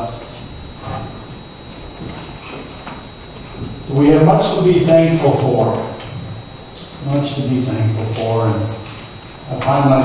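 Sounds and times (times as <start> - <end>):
room noise: 0.0 - 10.0
footsteps on hard floor: 1.8 - 3.8.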